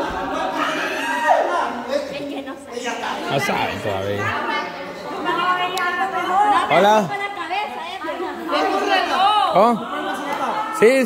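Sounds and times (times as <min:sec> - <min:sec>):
group of voices chattering: 0:00.0 - 0:11.0.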